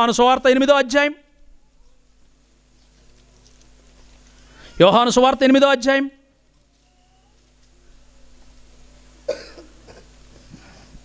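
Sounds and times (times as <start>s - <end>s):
person coughing: 9.3s - 10.8s.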